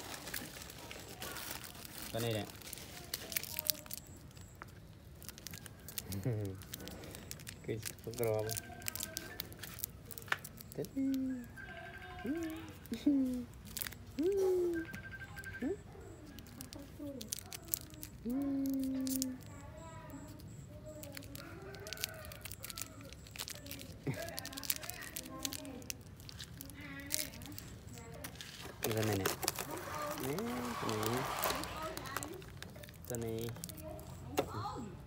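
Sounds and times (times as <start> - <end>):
candy wrapper crinkling: 0.0 - 14.9, 15.6 - 34.5.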